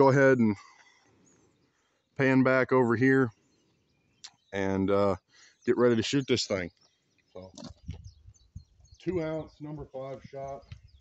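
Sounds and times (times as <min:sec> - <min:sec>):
bird chirps: 0:00.0 - 0:11.0
person speaking a word: 0:09.1 - 0:10.6.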